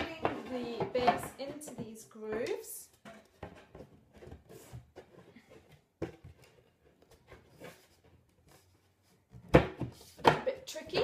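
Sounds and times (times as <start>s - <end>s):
wood scraping and knocking on wood: 0.0s - 11.0s.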